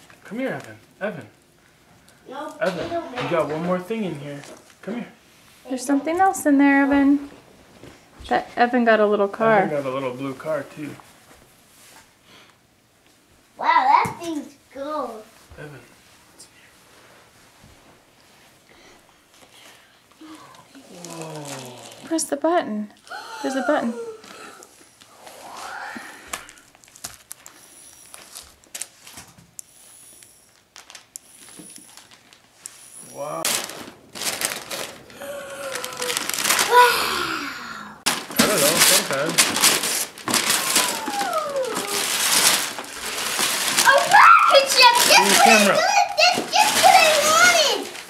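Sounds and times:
wrapping paper tearing: 0:20.8 - 0:22.2, 0:26.3 - 0:29.2, 0:30.5 - 0:37.2, 0:38.0 - 0:48.0
children's voices and squeals: 0:40.6 - 0:42.2, 0:43.8 - 0:48.0.

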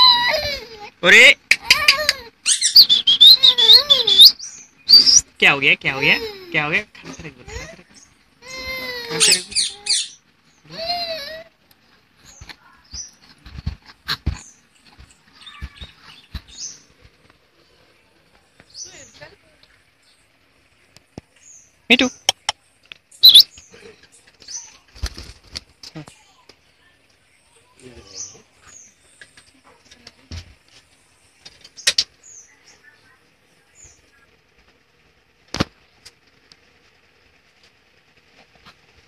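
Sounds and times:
parakeet whining call: 0:00.0 - 0:00.6, 0:01.6 - 0:05.3, 0:08.4 - 0:11.5, 0:23.2 - 0:23.5
parakeet harsh screeches: 0:01.6 - 0:05.2, 0:08.4 - 0:10.2, 0:23.2 - 0:23.4
soft thumps and rustling: 0:12.3 - 0:17.5
high chirps and clicks: 0:21.9 - 0:23.6.

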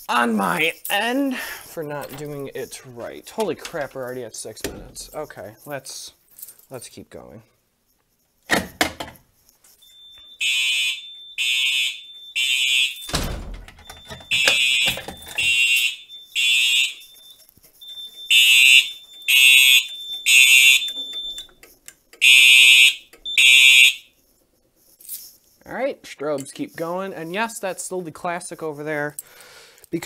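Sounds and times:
thin steady high tone: 0:09.4 - 0:11.4, 0:15.2 - 0:21.8
fire alarm horn blasts: 0:09.8 - 0:13.1, 0:13.8 - 0:21.6, 0:22.2 - 0:24.2.

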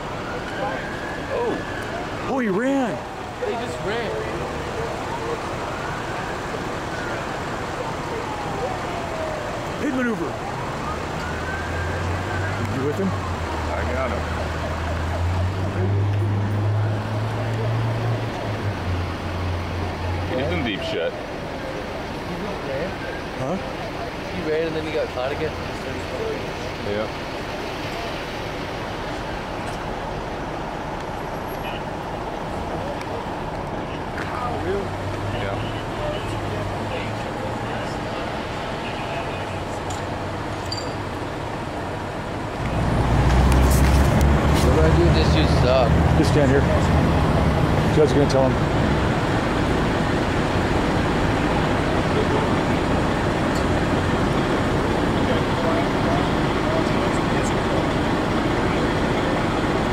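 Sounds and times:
emergency vehicle siren wailing: 0:00.0 - 0:59.9
road traffic: 0:00.0 - 0:59.9.

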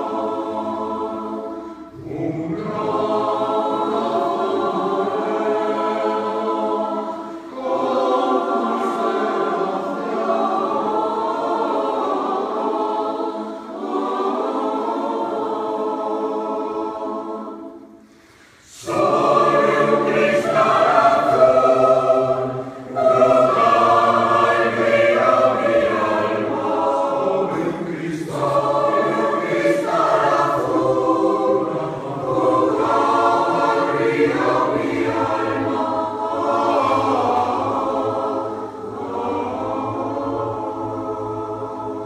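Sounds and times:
mixed choir singing: 0:00.0 - 0:42.0.

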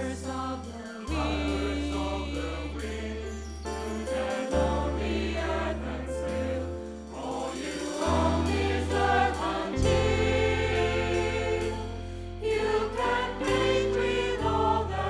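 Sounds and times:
instrumental accompaniment: 0:00.0 - 0:15.0
mixed choir singing: 0:00.0 - 0:15.0.

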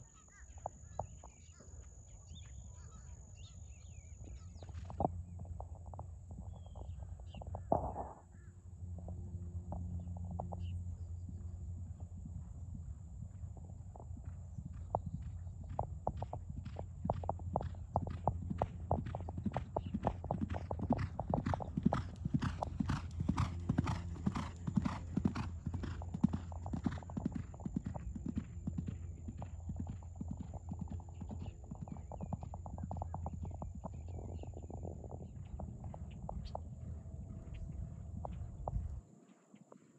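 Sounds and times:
horse hoofbeats galloping on dirt: 0:00.0 - 0:39.9.

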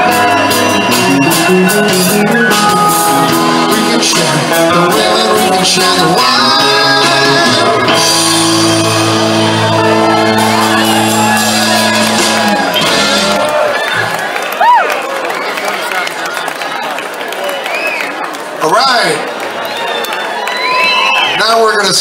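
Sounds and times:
audience cheering and whooping: 0:00.0 - 0:04.0, 0:06.6 - 0:18.6, 0:19.2 - 0:21.9
rock band final chord: 0:00.0 - 0:13.5.

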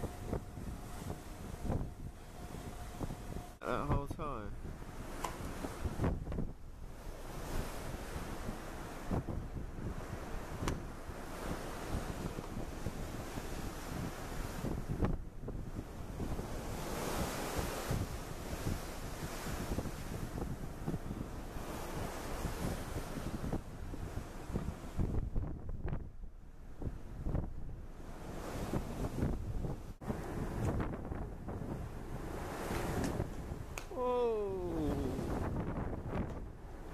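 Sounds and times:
open sea wash: 0:00.0 - 0:36.9
wind gusting on microphone: 0:00.0 - 0:36.9.

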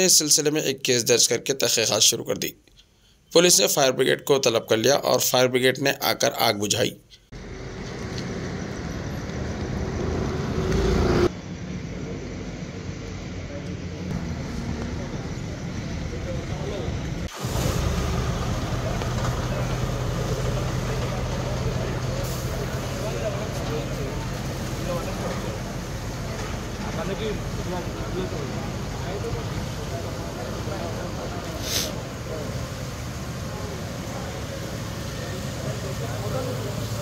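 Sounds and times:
people talking: 0:00.0 - 0:02.6, 0:03.3 - 0:07.0, 0:12.0 - 0:37.0
fire engine idling: 0:11.4 - 0:37.0.

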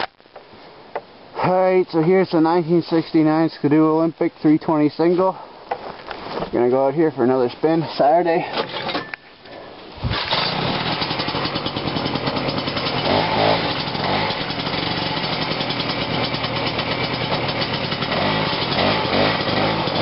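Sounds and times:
snowmobile engine running: 0:10.1 - 0:20.0.

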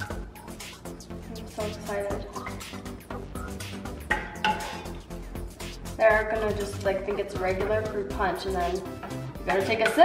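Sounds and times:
background music: 0:00.0 - 0:10.0
cup clinking against saucepan: 0:04.1 - 0:04.9.

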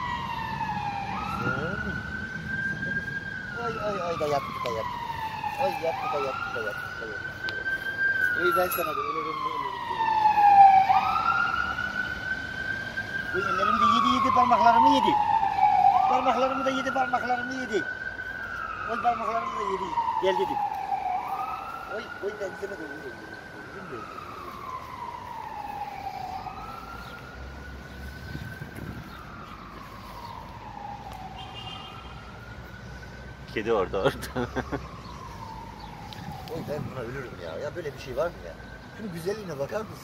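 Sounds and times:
siren wailing: 0:00.0 - 0:40.0.

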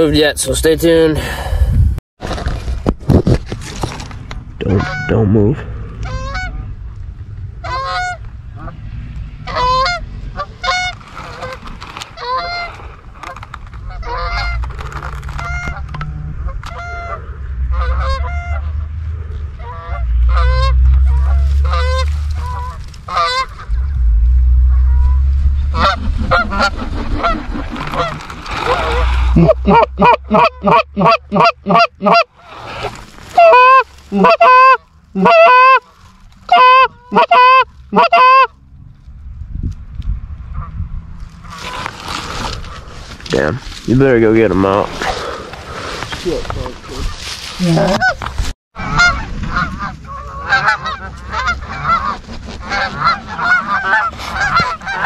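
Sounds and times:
geese honking: 0:04.6 - 0:05.3, 0:06.0 - 0:06.7, 0:07.6 - 0:08.8, 0:09.4 - 0:11.6, 0:12.2 - 0:14.7, 0:15.3 - 0:38.6, 0:46.8 - 0:55.0
wind buffeting microphone: 0:15.4 - 0:29.7, 0:38.7 - 0:55.0.

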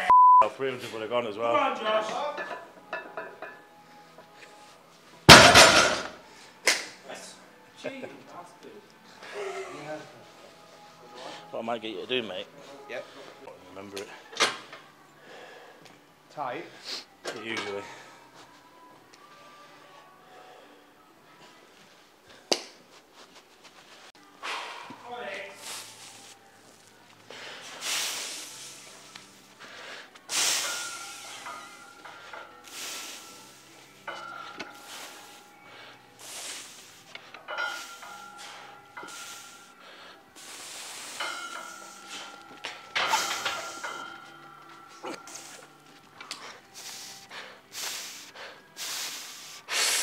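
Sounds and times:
sharp hissy breaths: 0:16.7 - 0:17.2, 0:25.6 - 0:26.4, 0:27.3 - 0:44.2, 0:45.1 - 0:50.0.

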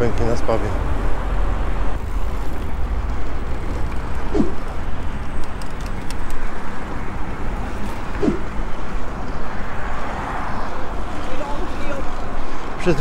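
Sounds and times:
tyre and traffic noise: 0:00.0 - 0:13.0
faint clicks: 0:05.4 - 0:06.4.

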